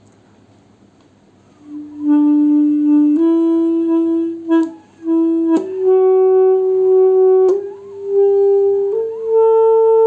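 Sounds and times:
alto saxophone long notes: 0:01.5 - 0:10.0.

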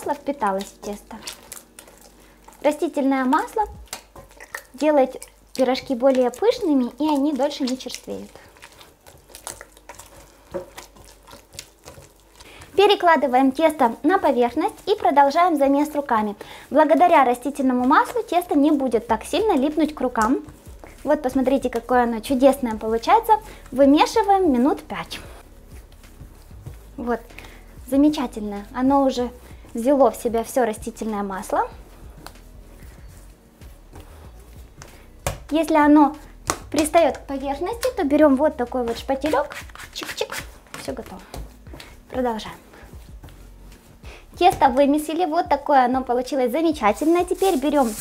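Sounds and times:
hand kneading wet dough: 0:00.0 - 0:48.0.

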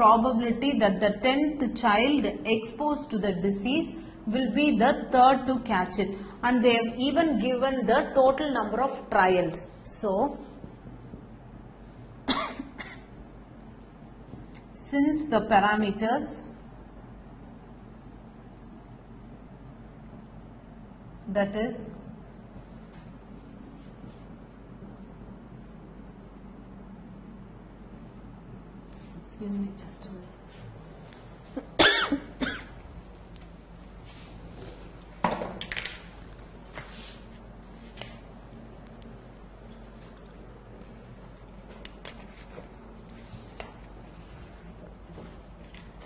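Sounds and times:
woman coughing: 0:12.2 - 0:13.1, 0:31.6 - 0:32.8.

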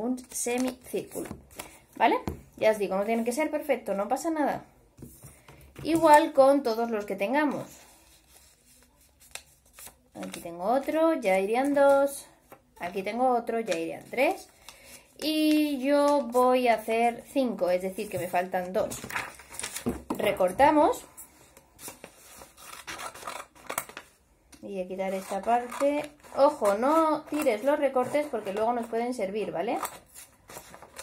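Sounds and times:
paper rustling: 0:07.5 - 0:11.0, 0:18.0 - 0:20.8, 0:25.1 - 0:31.0
scissors snipping paper: 0:25.0 - 0:28.9.

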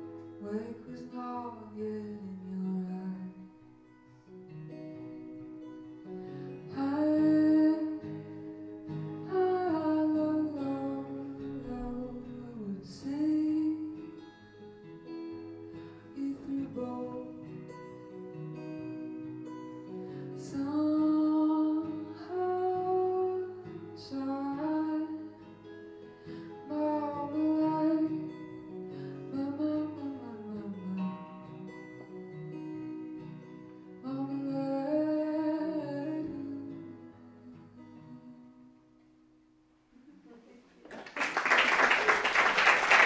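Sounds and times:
acoustic guitar: 0:00.0 - 0:43.0.

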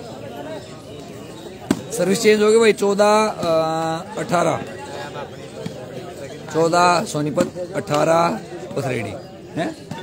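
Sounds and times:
faint crowd voices: 0:00.0 - 0:10.0.

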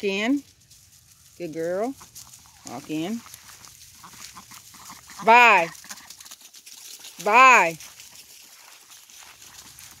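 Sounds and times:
footsteps crunching dry leaves: 0:00.2 - 0:10.0.

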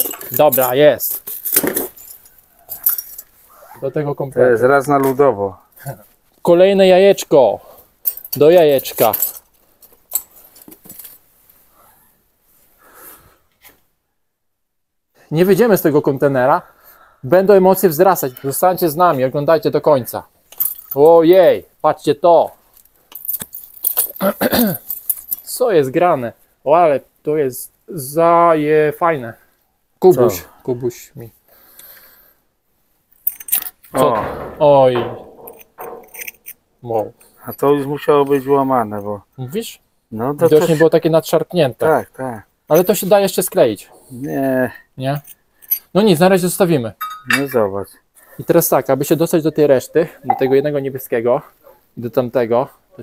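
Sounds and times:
small hard items clinking: 0:00.0 - 0:03.3, 0:22.8 - 0:25.5.

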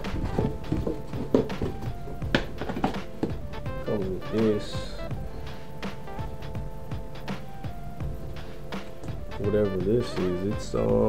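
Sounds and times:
cardboard box knocks and thunks: 0:00.0 - 0:03.4.

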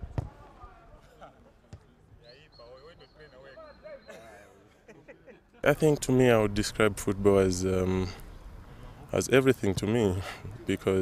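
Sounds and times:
ball thump: 0:00.0 - 0:00.4
distant players calling: 0:01.9 - 0:04.8.

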